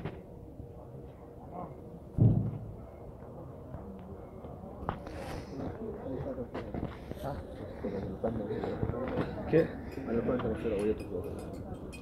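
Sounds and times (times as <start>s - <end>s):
people talking faintly: 0.0s - 12.0s
loud low thump: 2.2s - 2.8s.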